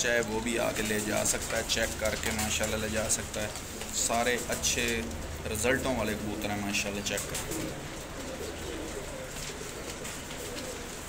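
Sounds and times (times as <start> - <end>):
pigeons cooing: 0.0 - 11.0.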